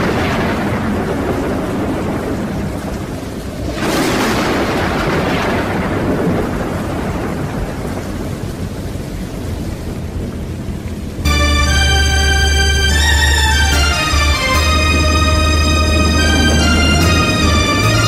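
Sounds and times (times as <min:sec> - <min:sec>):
thunderclap: 0:00.0 - 0:08.7, 0:11.3 - 0:18.0
rolling thunder: 0:00.0 - 0:09.0
rain falling steadily: 0:00.0 - 0:18.0.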